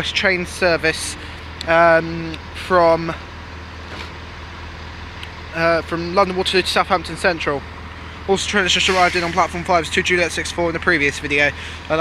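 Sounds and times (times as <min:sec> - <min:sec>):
railway station hum and rumble: 0:00.0 - 0:12.0.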